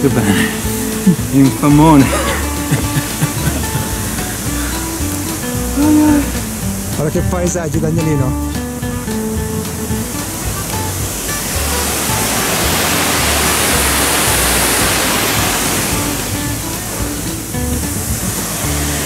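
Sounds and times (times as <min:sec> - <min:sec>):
music with low beat: 0:00.0 - 0:19.0
water rushing in stream: 0:00.0 - 0:19.0.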